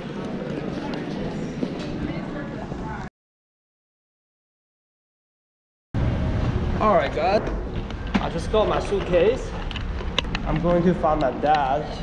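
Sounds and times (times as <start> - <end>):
crowd hubbub: 0.0 - 3.1.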